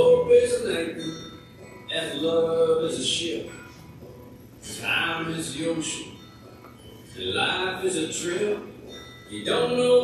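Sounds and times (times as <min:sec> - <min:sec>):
man singing: 0:00.0 - 0:01.2, 0:01.9 - 0:03.5, 0:04.6 - 0:06.1, 0:07.2 - 0:10.0.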